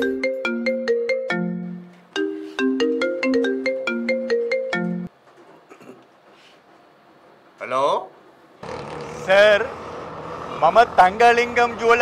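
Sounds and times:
mobile phone ringtone melody: 0.0 - 5.1.

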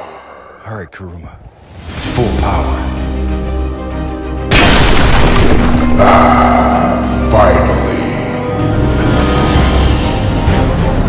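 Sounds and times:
background music: 0.1 - 11.0
loud boom: 4.5 - 6.4.

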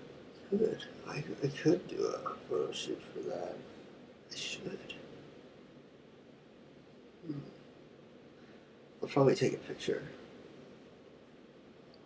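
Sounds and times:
faint steady hiss: 0.0 - 12.0.

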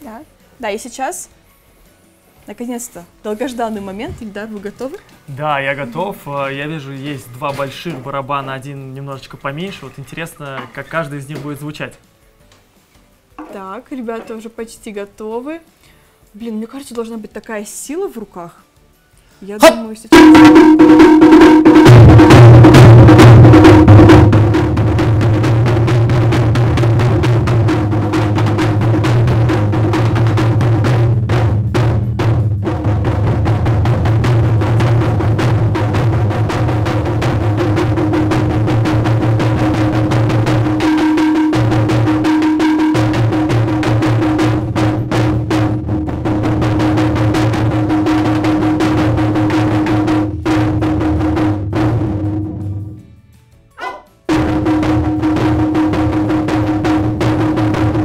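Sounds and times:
taiko drums booming: 19.6 - 52.9, 54.3 - 58.0.

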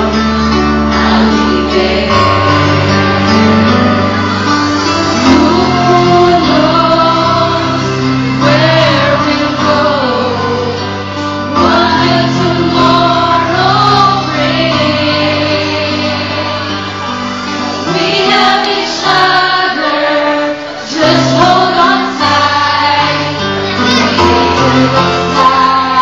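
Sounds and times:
chordal accompaniment: 0.0 - 26.0
group of voices singing: 0.0 - 26.0.

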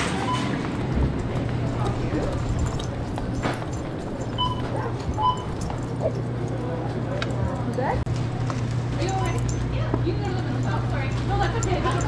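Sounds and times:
grocery store low hum: 0.0 - 12.0.

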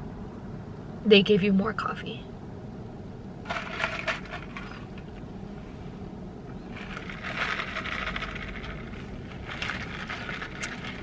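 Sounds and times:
ice cubes rattling in plastic cup: 3.5 - 5.0, 6.7 - 11.0.

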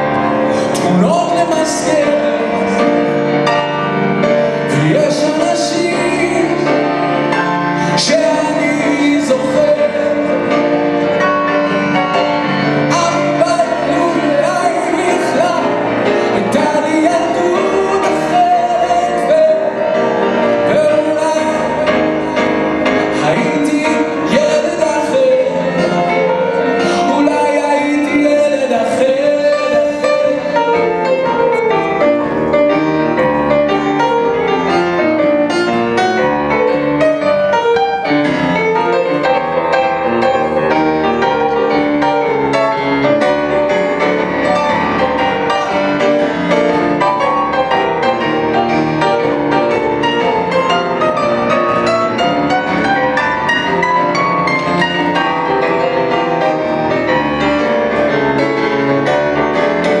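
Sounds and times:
grand piano playing: 0.0 - 60.0.

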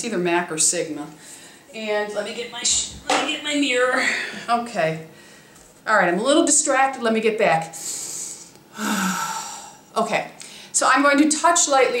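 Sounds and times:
woman breathing in: 7.8 - 10.7
woman sighing: 8.2 - 9.8.

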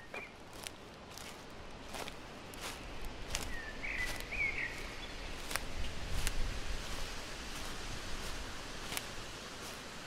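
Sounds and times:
bird chirp: 0.0 - 0.4, 3.3 - 5.5
footsteps in dry leaves: 0.0 - 10.0.

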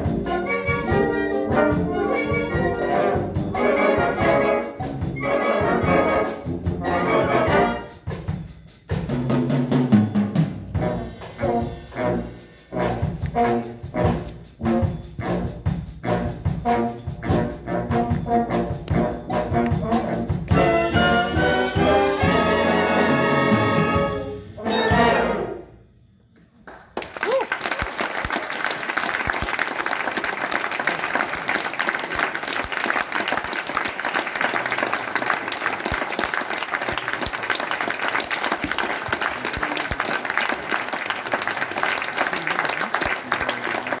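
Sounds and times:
audience applause: 26.6 - 44.0.

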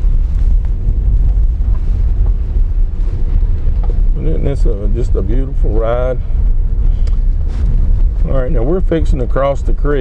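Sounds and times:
car engine rumble: 0.0 - 10.0
tyre noise on dirt road: 0.0 - 10.0.

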